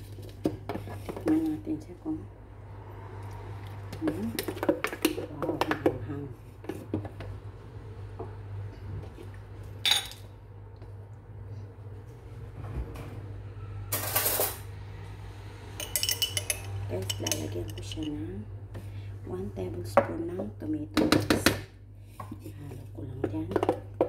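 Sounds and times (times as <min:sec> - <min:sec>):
metal spoon clinking against dishes: 0:15.8 - 0:18.2.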